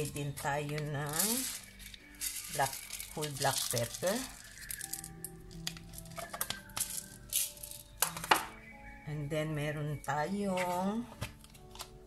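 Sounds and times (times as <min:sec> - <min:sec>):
peppercorns rattling from jar: 0:00.0 - 0:08.4
background music with held notes: 0:00.0 - 0:12.0.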